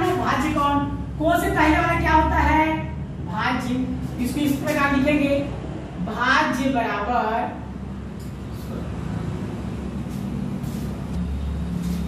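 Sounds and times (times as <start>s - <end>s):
low mechanical rumble: 0.0s - 12.0s.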